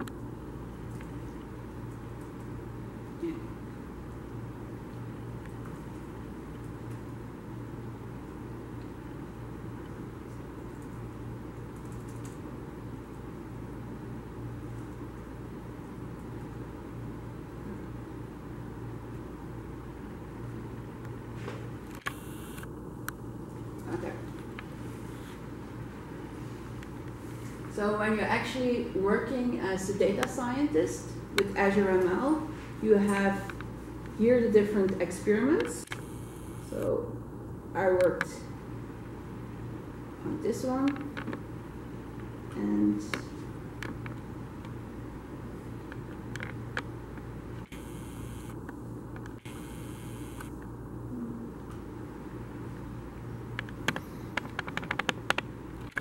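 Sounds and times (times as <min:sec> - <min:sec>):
room hum and hiss: 0:00.0 - 0:56.0
camcorder zoom motor whirring: 0:22.0 - 0:22.7, 0:35.9 - 0:36.7, 0:47.7 - 0:48.6, 0:49.4 - 0:50.6.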